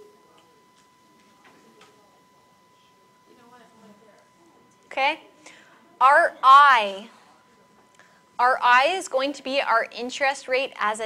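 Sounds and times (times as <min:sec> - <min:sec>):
thin electrical tone: 0:00.0 - 0:11.0.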